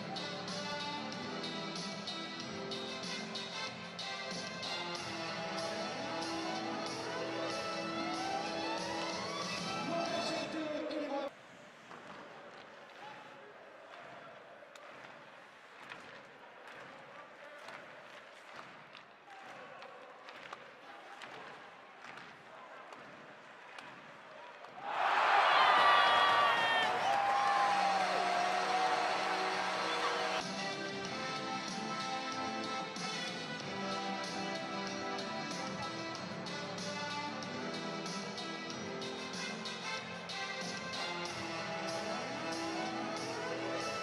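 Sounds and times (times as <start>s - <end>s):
arena music: 0.0s - 11.3s, 27.0s - 44.0s
arena crowd hubbub: 0.0s - 44.0s
crowd cheering burst: 24.7s - 30.5s.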